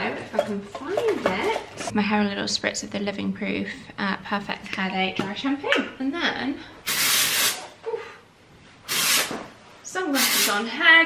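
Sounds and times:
aerosol spray hissing: 6.9 - 7.7, 8.9 - 9.3, 10.2 - 10.6.

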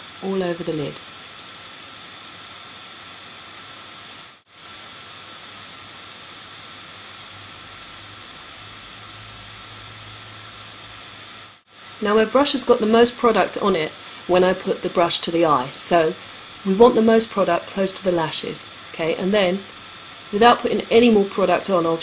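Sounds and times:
microphone hiss: 0.0 - 22.0.

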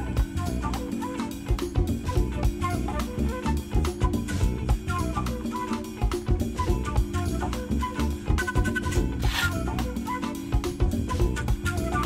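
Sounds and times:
instrumental background music: 0.0 - 12.0.

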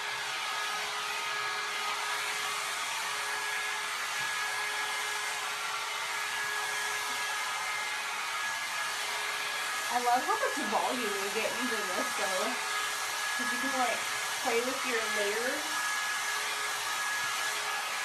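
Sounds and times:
hot air brush blowing: 0.0 - 18.0.

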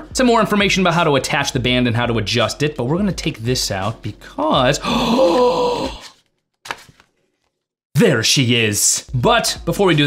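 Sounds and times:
man exclaiming in admiration: 4.8 - 6.1
man gasping: 4.8 - 6.2.

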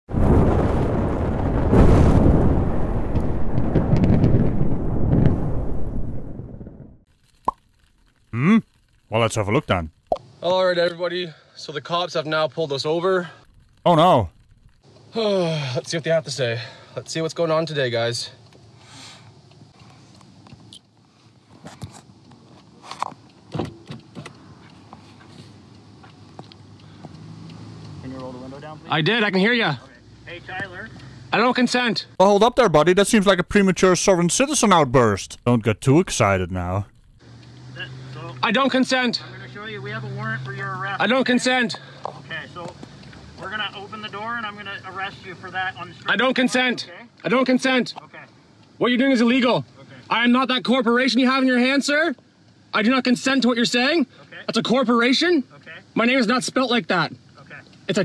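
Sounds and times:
fiery explosion-like rumble: 0.1 - 7.0.

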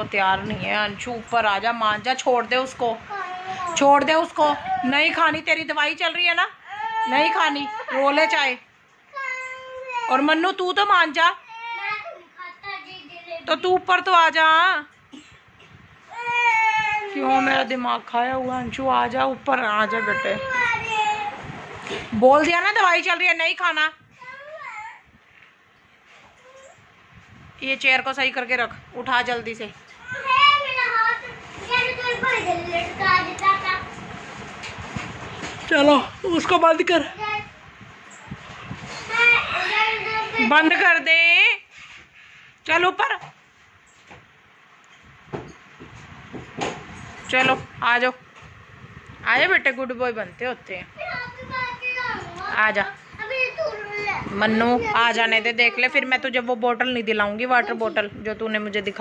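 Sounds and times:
young child crying: 16.1 - 17.2.

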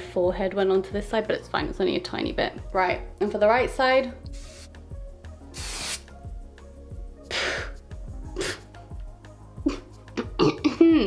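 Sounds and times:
spray hissing bursts: 4.3 - 4.8, 5.6 - 6.1.

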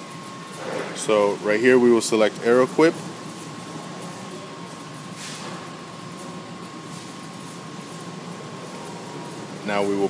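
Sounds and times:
machinery hum and hiss: 0.0 - 10.0.

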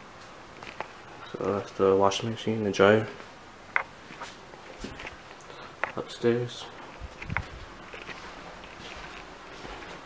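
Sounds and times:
soft footsteps on indoor floor: 4.0 - 5.3, 6.6 - 10.0.

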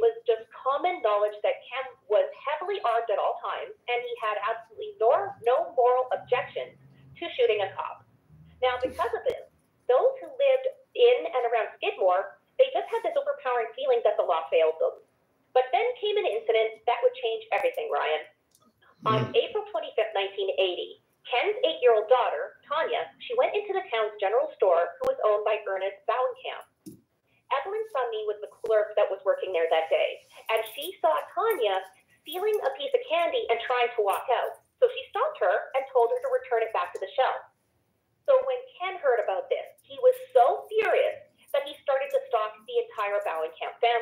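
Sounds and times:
person talking: 8.6 - 14.9, 19.0 - 20.5, 27.5 - 37.4, 38.3 - 44.0
person talking over telephone: 8.6 - 14.9, 19.0 - 20.4.

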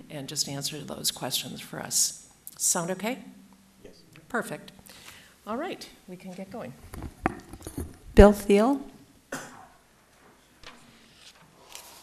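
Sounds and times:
person coughing: 9.3 - 9.8.

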